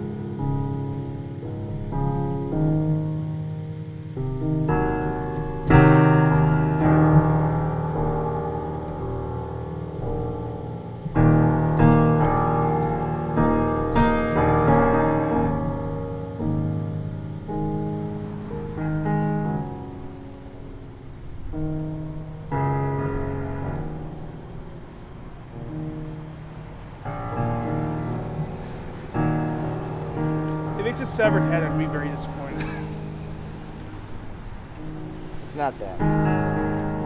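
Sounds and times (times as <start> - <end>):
piano music: 0.0 - 37.0.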